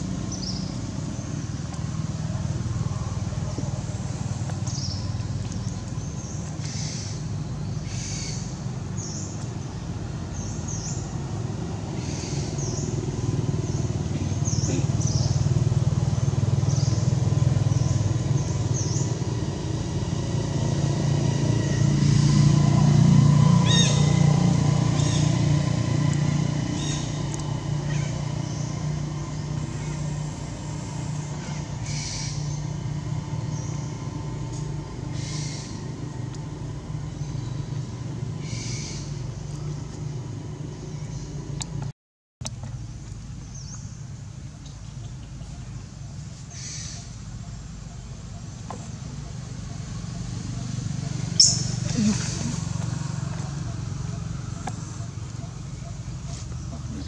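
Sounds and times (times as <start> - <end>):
vehicle engine droning: 0.0 - 57.0.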